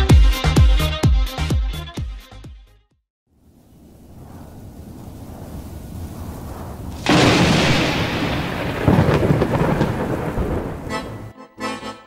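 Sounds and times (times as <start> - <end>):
rain: 3.4 - 11.2
thunder rumbling: 3.5 - 11.3.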